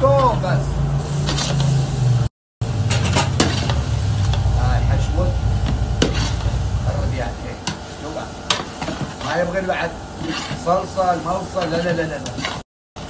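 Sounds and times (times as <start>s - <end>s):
metal spatula scraping a pan: 1.1s - 1.8s, 2.8s - 4.6s, 5.6s - 6.8s, 7.5s - 12.7s
steady low hum: 2.6s - 12.6s
shrimp sizzling in a pan: 7.4s - 12.6s.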